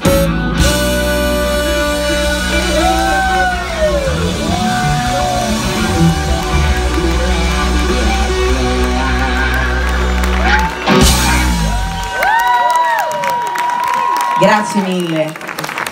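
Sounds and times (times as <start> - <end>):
rock band holding a chord: 0.0 - 12.2
audience whooping and cheering: 1.5 - 15.9
people clapping: 2.8 - 15.9.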